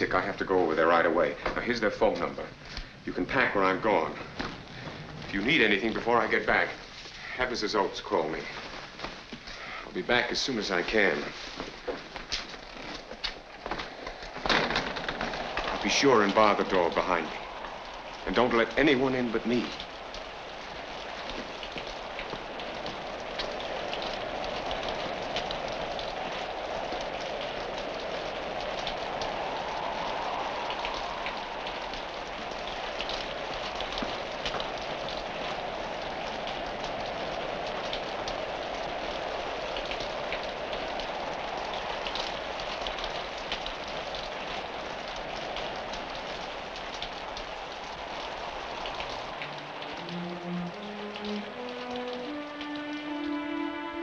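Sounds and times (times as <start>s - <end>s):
heavy rain pouring: 0.0s - 54.0s
rising run of music notes: 49.1s - 54.0s.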